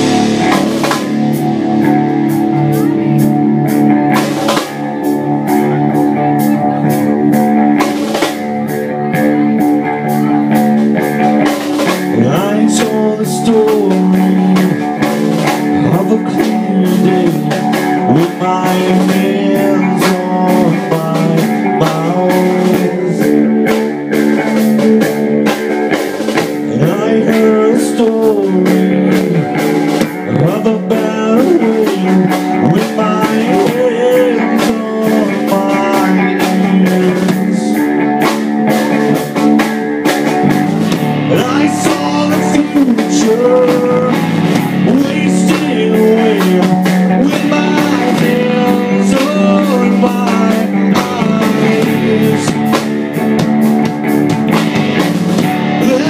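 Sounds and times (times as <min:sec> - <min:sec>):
bass guitar: 0:00.0 - 0:56.0
electric guitar bending notes: 0:00.0 - 0:56.0
steady drum beat: 0:00.0 - 0:56.0.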